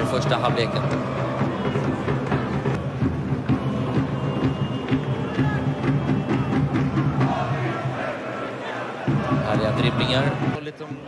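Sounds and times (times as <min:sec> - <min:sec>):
background music with drum beat: 0:00.0 - 0:08.1, 0:09.0 - 0:11.0.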